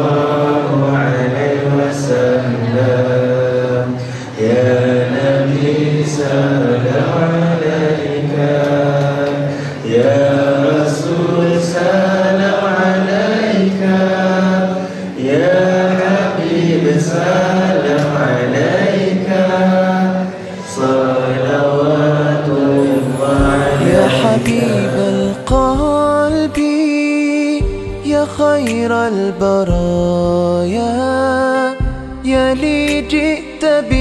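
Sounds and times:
men chanting together: 0:00.0 - 0:25.8.

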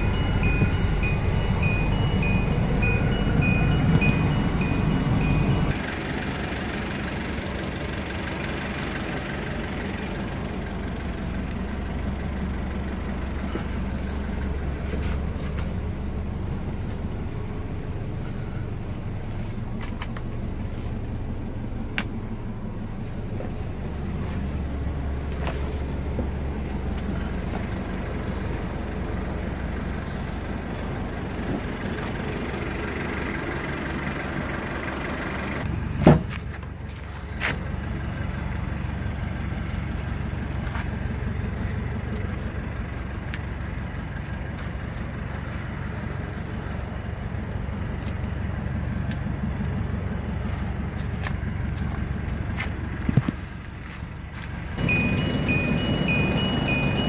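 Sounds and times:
van engine idling: 0:00.0 - 0:57.0.

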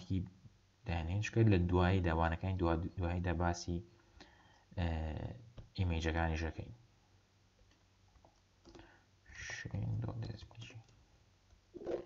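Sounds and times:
person whispering: 0:09.3 - 0:10.9.

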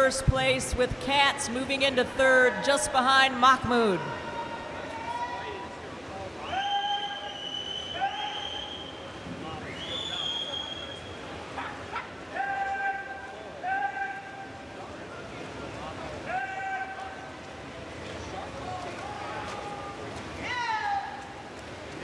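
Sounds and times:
pool hall noise: 0:00.0 - 0:22.0.

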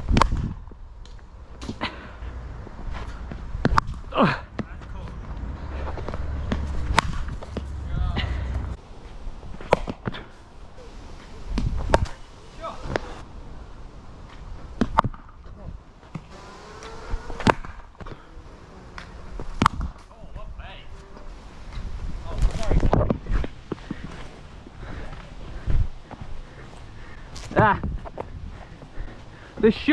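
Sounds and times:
wind rumble on microphone: 0:00.0 - 0:01.0, 0:11.4 - 0:12.2, 0:19.2 - 0:26.4, 0:27.4 - 0:29.0.

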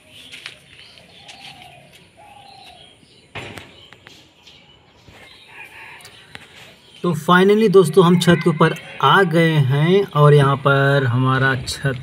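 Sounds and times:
high bird chirps: 0:00.0 - 0:09.0
low bird cooing: 0:01.1 - 0:03.0.

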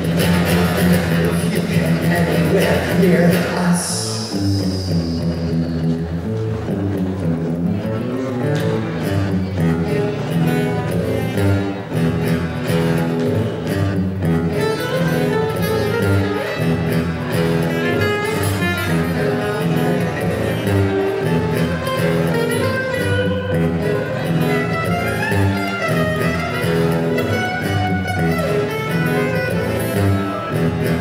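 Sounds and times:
acoustic guitar playing: 0:00.0 - 0:31.0.

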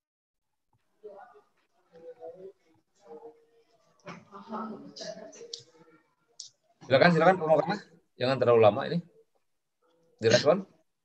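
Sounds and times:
man speaking: 0:06.8 - 0:09.1, 0:10.2 - 0:10.8
person speaking: 0:10.2 - 0:10.8.

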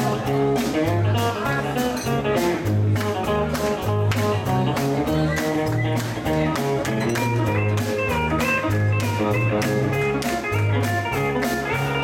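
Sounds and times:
electric bass line: 0:00.0 - 0:12.0
fiddle: 0:00.0 - 0:12.0
strummed guitar: 0:00.0 - 0:12.0.

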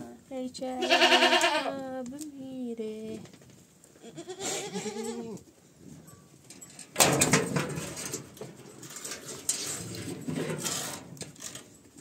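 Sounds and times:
goat bleating: 0:00.8 - 0:01.8, 0:04.0 - 0:05.4
rustling and knocking: 0:06.1 - 0:11.7.

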